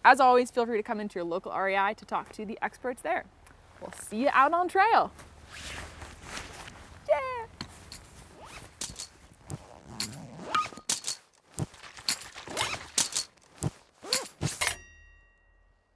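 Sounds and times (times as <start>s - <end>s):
footsteps and knocks: 7.5s - 9.7s, 10.9s - 14.6s.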